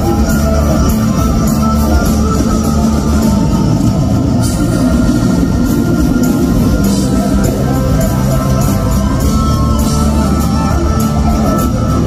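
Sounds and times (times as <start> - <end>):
loud live rock band: 0.0 - 12.0.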